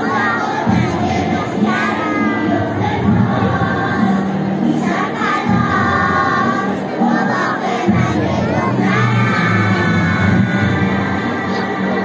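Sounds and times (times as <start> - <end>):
girls singing together: 0.0 - 12.0.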